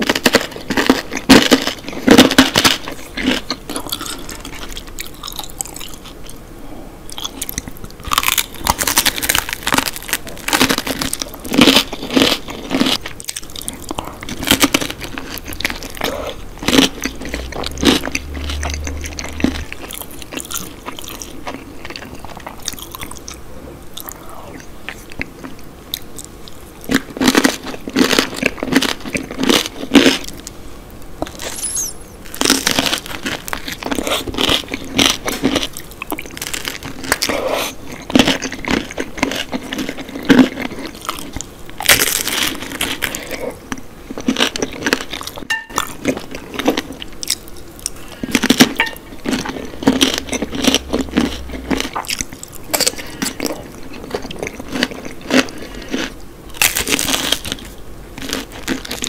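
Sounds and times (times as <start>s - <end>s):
crunchy chewing: 0.0s - 6.4s, 7.1s - 30.6s, 31.2s - 59.0s.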